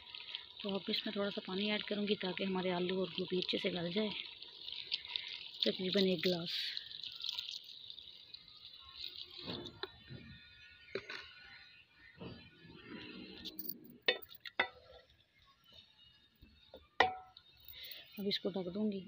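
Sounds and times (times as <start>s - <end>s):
water pouring into metal pot: 0.0s - 11.4s.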